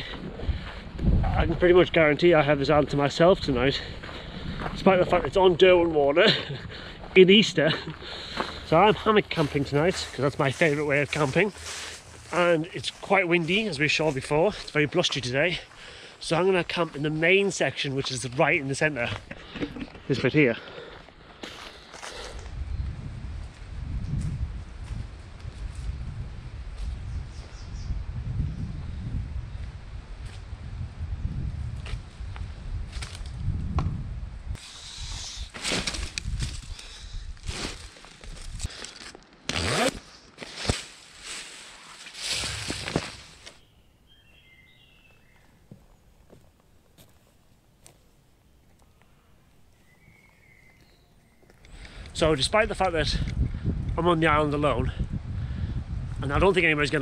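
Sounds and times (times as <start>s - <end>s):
wind rumble on microphone: 0.0s - 7.1s, 22.4s - 34.6s, 36.0s - 38.7s, 51.9s - 57.0s
footsteps through dry leaves: 7.7s - 15.8s, 35.6s - 43.6s
rustling of gear and fabric: 35.5s - 43.6s.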